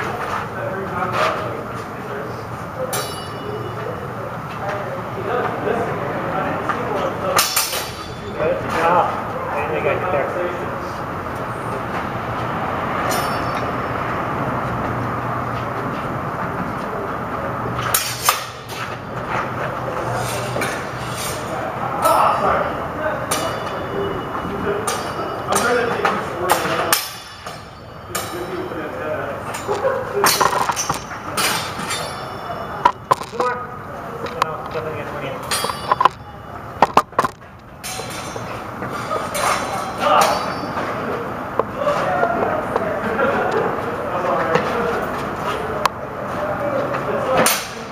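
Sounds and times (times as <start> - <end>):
indistinct background voices: 0.0 - 47.9
sword blades clashing: 2.9 - 3.5, 7.4 - 8.3, 13.1 - 13.7, 17.9 - 18.7, 23.3 - 23.8, 24.8 - 25.8, 26.5 - 28.7, 29.5 - 33.4, 35.4 - 36.3, 39.1 - 40.8.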